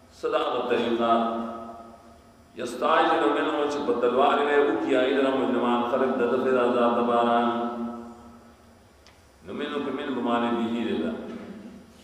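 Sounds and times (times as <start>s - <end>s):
man chanting melodic recitation: 2.6s - 8.0s.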